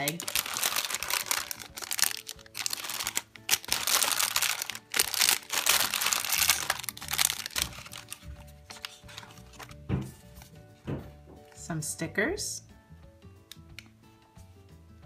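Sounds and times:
candy wrappers crinkling: 0:00.0 - 0:09.8
soft background music: 0:00.0 - 0:15.0.

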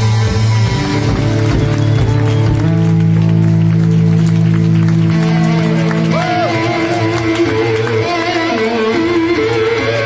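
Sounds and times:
amplified electric guitar: 0:00.0 - 0:10.0.

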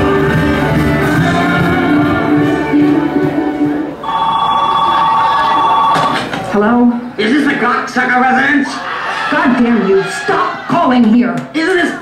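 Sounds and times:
music: 0:00.0 - 0:04.1
telephone ringing: 0:04.0 - 0:06.3.

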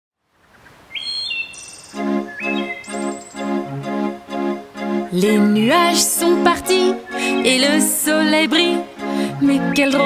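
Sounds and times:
faint outdoor hiss: 0:00.2 - 0:10.0
birds chirping: 0:00.4 - 0:03.9, 0:06.9 - 0:07.8, 0:09.4 - 0:10.0
pulsing chord intro music: 0:02.0 - 0:09.8.

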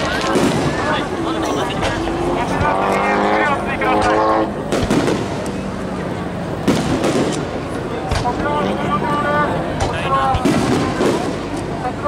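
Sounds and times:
fireworks bursting: 0:00.0 - 0:02.2, 0:04.0 - 0:05.8, 0:06.6 - 0:08.4, 0:09.8 - 0:11.9
crowd noise: 0:00.0 - 0:12.0.

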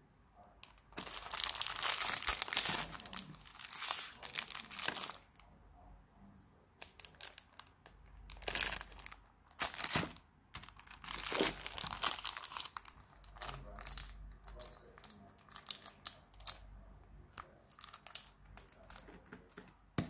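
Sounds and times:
plastic packaging crinkling: 0:00.6 - 0:05.4, 0:06.8 - 0:16.6, 0:17.3 - 0:19.2.

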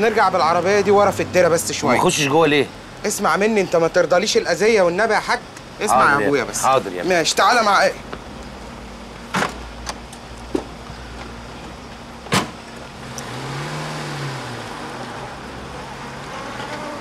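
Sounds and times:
car engine revving: 0:12.2 - 0:17.0
car door slamming shut: 0:12.3 - 0:12.6.

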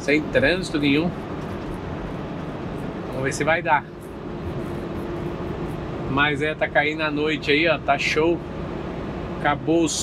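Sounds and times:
faint steady hum: 0:00.0 - 0:10.0
truck engine drone: 0:00.0 - 0:10.0.

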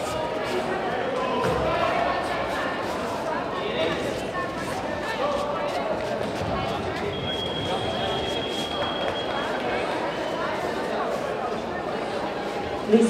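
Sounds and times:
chatter of many voices: 0:00.0 - 0:13.0.

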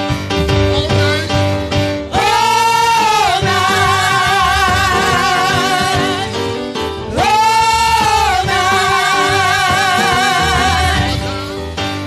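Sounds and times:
keyboard accompaniment: 0:00.0 - 0:12.0
female gospel group singing: 0:02.1 - 0:11.5.

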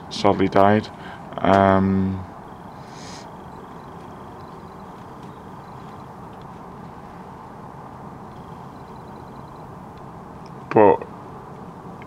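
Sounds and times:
low background noise: 0:00.0 - 0:12.0
faint high chirps: 0:02.1 - 0:06.5, 0:08.2 - 0:10.1.

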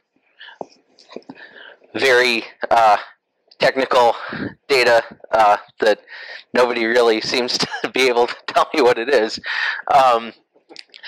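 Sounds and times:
person whispering: 0:00.4 - 0:03.0.

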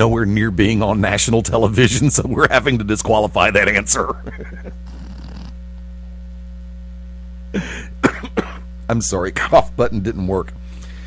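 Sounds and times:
mains hum: 0:00.0 - 0:11.0.

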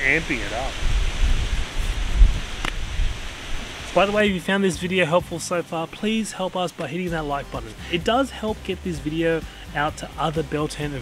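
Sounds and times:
wind buffeting microphone: 0:00.0 - 0:04.4.

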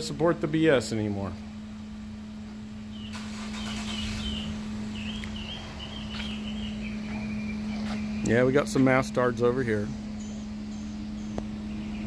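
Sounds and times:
steady low hum: 0:00.0 - 0:12.0
bird warbling song: 0:02.8 - 0:12.0.

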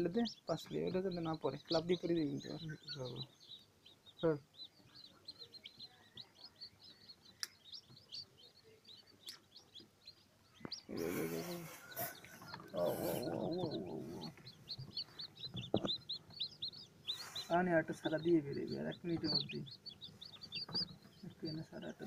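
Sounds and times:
chicks peeping: 0:00.0 - 0:22.0
person's voice: 0:10.9 - 0:11.8, 0:12.7 - 0:14.4.

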